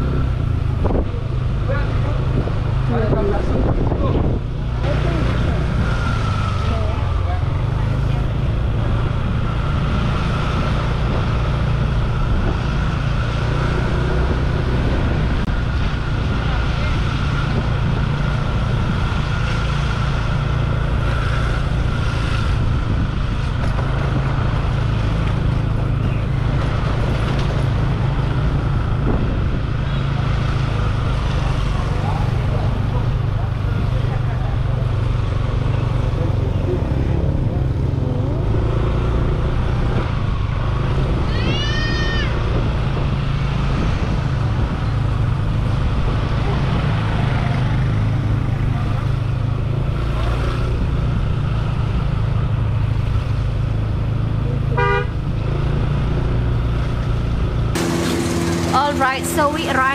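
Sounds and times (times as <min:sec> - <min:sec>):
road noise: 0:00.0 - 0:59.9
motorbike engine running: 0:43.8 - 0:59.9.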